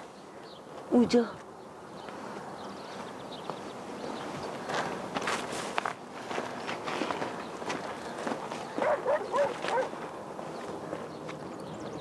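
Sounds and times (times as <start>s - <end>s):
dog yelping barks: 8.8s - 10.0s.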